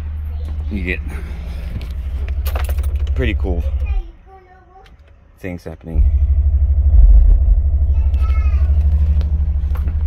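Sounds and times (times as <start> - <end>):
deep bass drone: 0.0 - 4.2, 5.8 - 10.0
car cabin parts rattling: 1.7 - 4.1.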